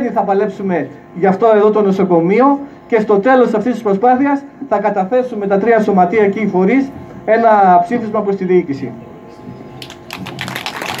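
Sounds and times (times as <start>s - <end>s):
crowd applauding: 9.8s - 11.0s.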